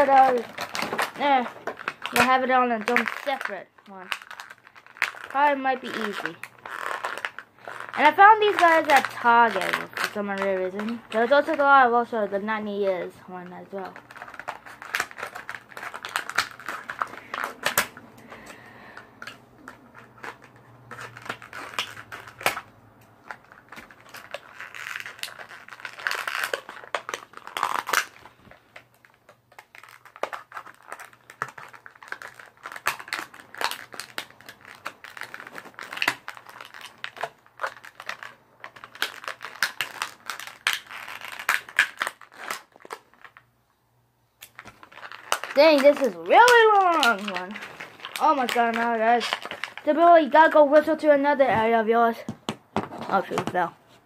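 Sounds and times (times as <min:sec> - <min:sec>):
plastic packaging crinkling: 0:00.0 - 0:43.7, 0:44.4 - 0:54.0.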